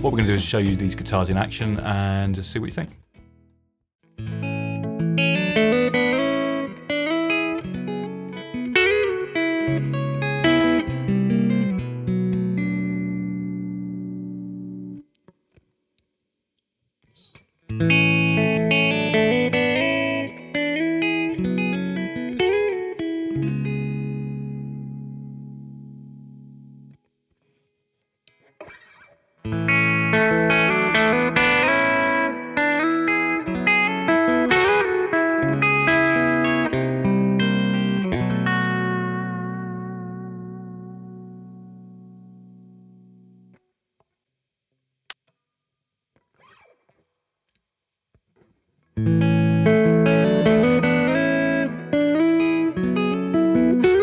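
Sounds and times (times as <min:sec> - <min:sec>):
electric guitar notes and chords: 0:04.1 - 0:15.6, 0:17.1 - 0:27.6, 0:28.3 - 0:43.6, 0:46.2 - 0:47.1, 0:48.4 - 0:54.0.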